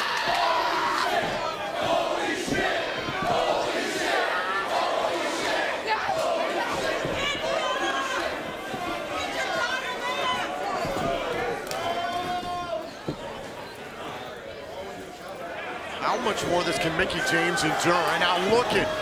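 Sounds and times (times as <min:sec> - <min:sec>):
crowd shouting and yelling: 0:00.0 - 0:19.0.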